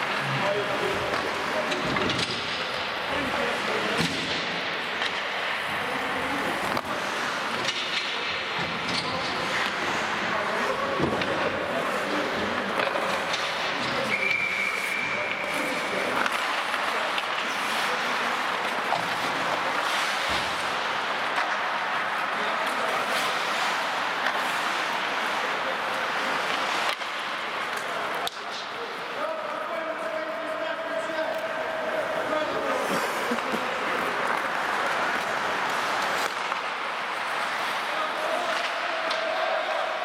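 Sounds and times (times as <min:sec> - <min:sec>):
clacks of sticks and puck: 0:00.0 - 0:40.0
skates scraping on ice: 0:00.0 - 0:40.0
high whistle: 0:14.1 - 0:15.3.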